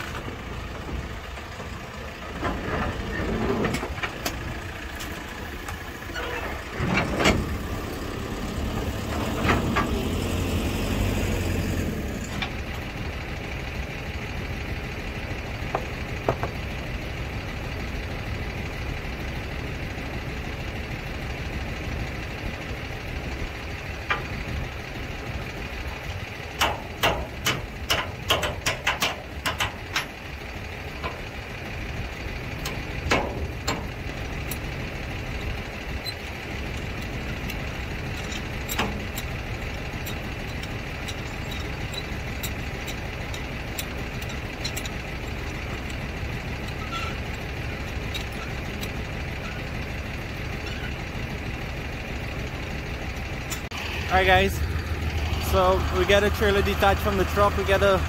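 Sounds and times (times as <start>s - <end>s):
diesel engine running: 0.0s - 58.0s
heavy metallic knocks: 15.7s - 16.6s, 26.6s - 30.2s
metal clicks and knocks: 15.7s - 16.6s, 26.6s - 30.2s, 32.6s - 34.6s, 36.1s - 39.4s, 40.0s - 46.0s.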